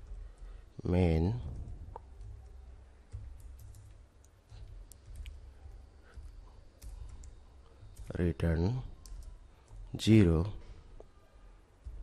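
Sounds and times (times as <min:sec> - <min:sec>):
keyboard typing clicks: 0:02.0 - 0:05.4, 0:09.0 - 0:09.9.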